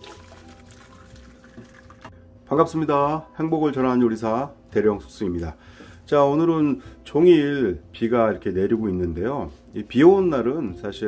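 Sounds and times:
broth pouring into bowl: 0.0 - 2.1.

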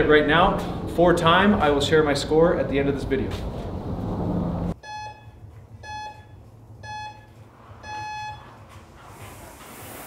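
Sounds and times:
interval timer beeping: 4.8 - 8.6
rowing machine flywheel whooshing: 8.6 - 10.0.

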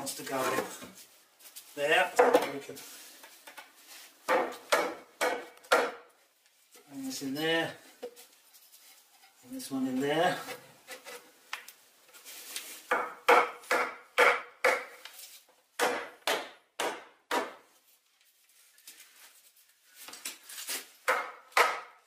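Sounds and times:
wooden mallet knocking wood: 4.3 - 6.1, 12.9 - 15.0, 15.8 - 17.6, 21.1 - 22.0.

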